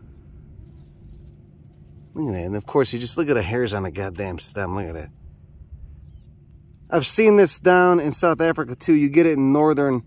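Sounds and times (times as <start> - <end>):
quiet outdoor background noise: 0.0 - 10.0.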